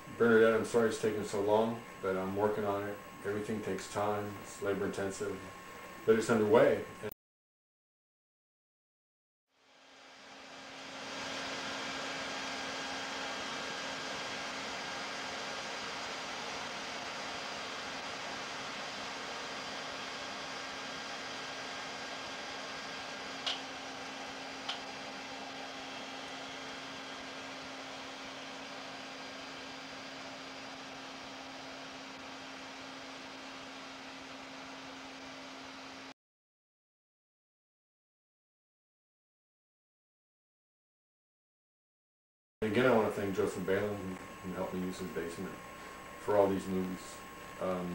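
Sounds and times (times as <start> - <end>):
fan-like hum and hiss: 0.0 - 7.1, 9.6 - 36.1, 42.6 - 47.9.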